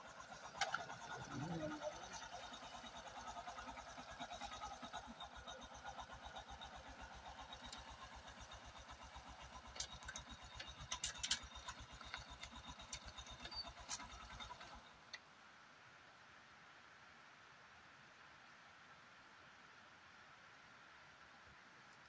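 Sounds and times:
low rapidly pulsing rumble: 0.1 - 7.4.

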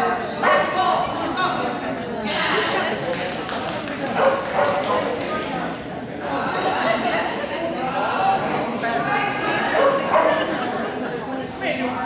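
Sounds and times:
murmur of people talking: 0.0 - 12.0
dog barking: 4.2 - 5.0, 9.8 - 10.5.

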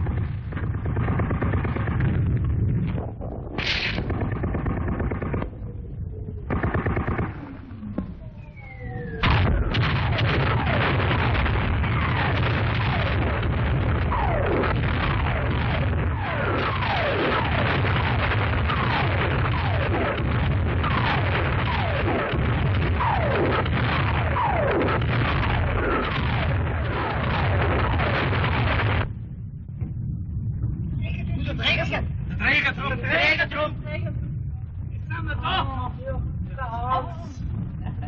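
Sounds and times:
shell bursts: 0.0 - 2.6, 3.6 - 5.8, 6.4 - 8.0
sudden blast: 0.0 - 31.0
heavy low rumble: 0.0 - 38.0
whistles of incoming shells: 8.3 - 9.2.

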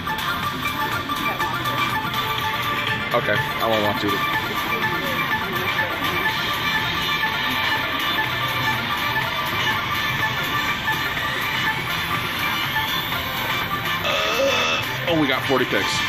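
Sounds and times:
guitar-led slot machine music: 0.0 - 16.0.

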